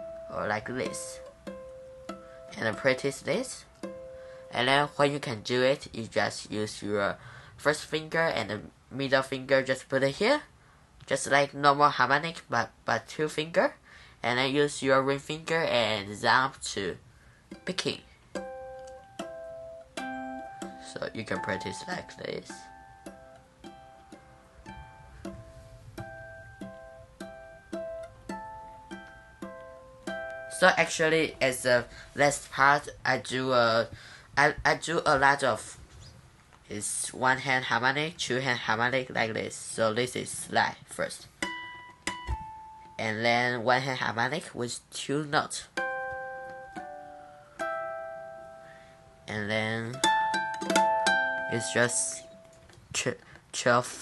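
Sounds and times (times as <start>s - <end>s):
ukulele harmonics plucked: 0.0s - 5.1s, 17.5s - 33.6s, 41.4s - 43.0s, 45.8s - 48.9s, 49.7s - 52.7s.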